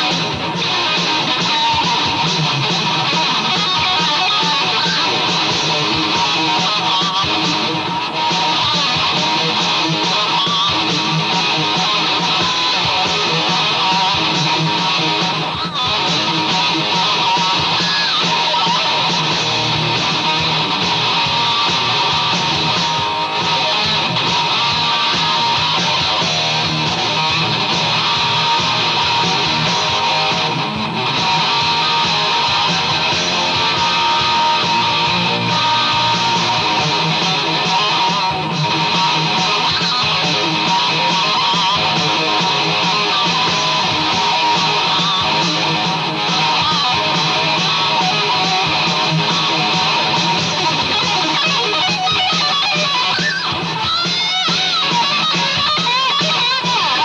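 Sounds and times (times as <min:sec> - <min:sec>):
electric guitar through amplifier: 0:00.0 - 0:57.0.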